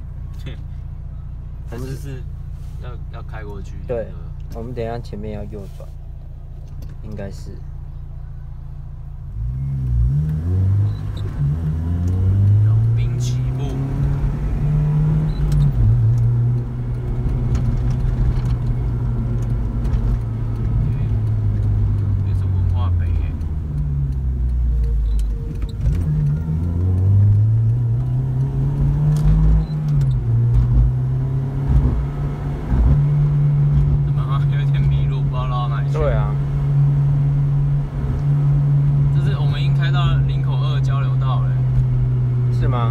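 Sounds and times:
car engine accelerating from cabin: 0.0s - 42.9s.

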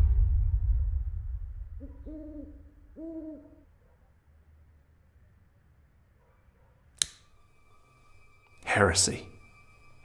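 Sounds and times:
owl hooting: 1.8s - 3.7s.

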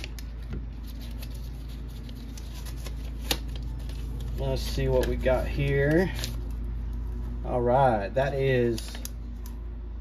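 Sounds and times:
envelope rustling: 0.0s - 7.3s
steady low hum: 0.0s - 10.0s.

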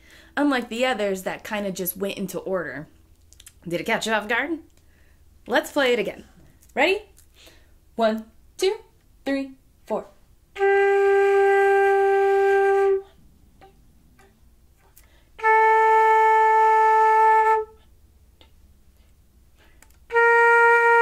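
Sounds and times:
flute long held notes: 10.6s - 13.8s, 15.4s - 17.9s, 20.1s - 21.0s.

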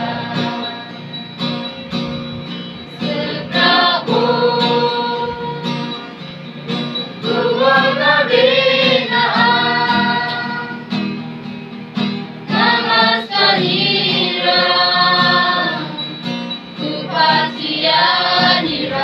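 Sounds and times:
group singing together: 0.0s - 1.5s, 2.7s - 6.2s, 6.8s - 11.2s, 12.4s - 19.0s
strummed acoustic guitar: 0.0s - 19.0s.

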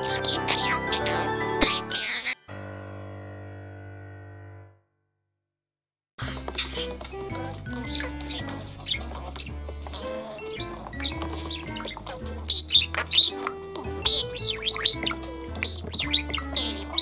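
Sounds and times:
budgerigar chirping: 0.0s - 2.4s, 6.3s - 17.0s
background music: 0.0s - 4.6s, 6.2s - 17.0s.

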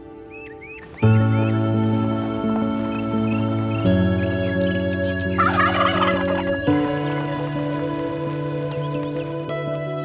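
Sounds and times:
background music with held notes: 0.0s - 10.0s
turkey gobbling: 5.0s - 7.3s.

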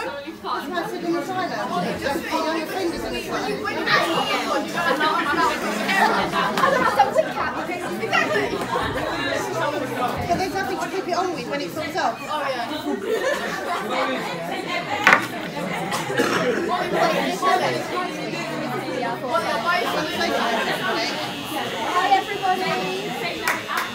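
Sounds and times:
chatter of many people: 0.0s - 23.9s.

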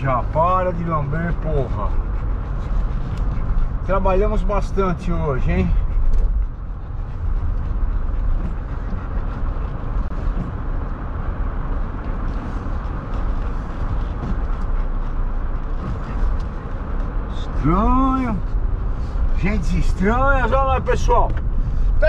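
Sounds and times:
engine and road noise: 0.0s - 22.0s.

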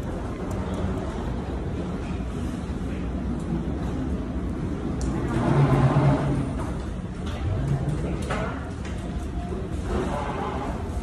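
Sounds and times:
elevator low rumble: 0.0s - 11.0s.

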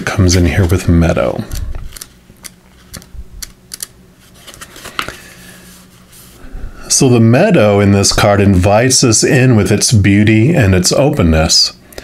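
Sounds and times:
book pages flipping: 0.5s - 6.3s.

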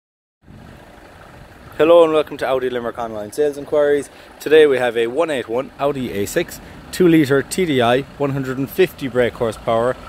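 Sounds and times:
low engine rumble: 0.4s - 10.0s
man speaking: 1.8s - 10.0s.

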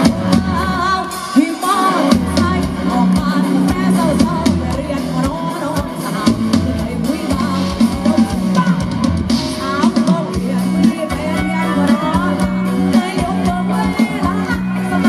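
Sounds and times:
drum kit: 0.0s - 15.0s
guitar: 0.0s - 15.0s
woman singing into a microphone: 0.0s - 15.0s.

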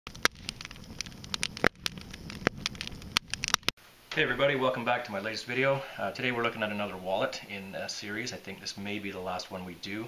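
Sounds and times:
low rumble of flames: 0.1s - 3.8s
sharp pops: 0.1s - 3.8s
open fire crackling: 0.1s - 10.0s.

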